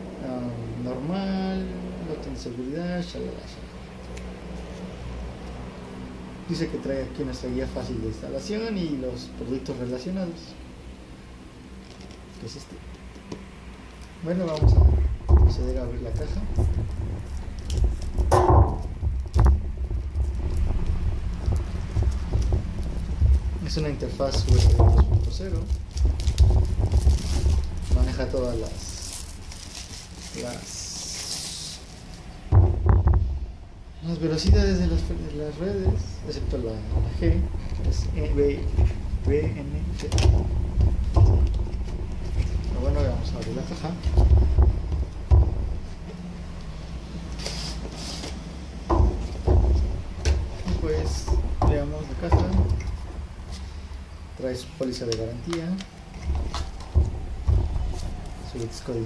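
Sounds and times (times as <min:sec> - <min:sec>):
steady low hum: 0:00.0 - 0:59.0
steady low rumble: 0:14.2 - 0:47.4, 0:48.3 - 0:59.0
plastic-wrapped box handled: 0:18.9 - 0:32.8
dull knock on cardboard box: 0:32.5 - 0:33.4.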